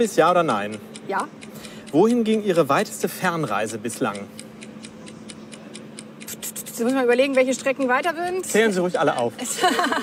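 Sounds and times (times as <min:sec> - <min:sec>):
rapid clock ticking: 0:00.0 - 0:09.6
faint steady hum: 0:00.0 - 0:10.0.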